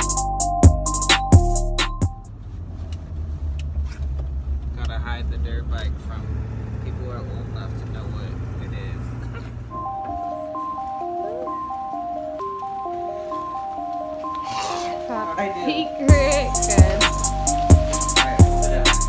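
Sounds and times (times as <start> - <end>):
road and engine rumble: 0.0 - 19.0
light plinky melody: 9.7 - 19.0.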